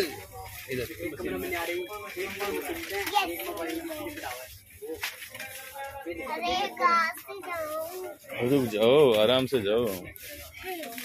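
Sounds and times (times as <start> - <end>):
background talking: 0.0 - 11.0.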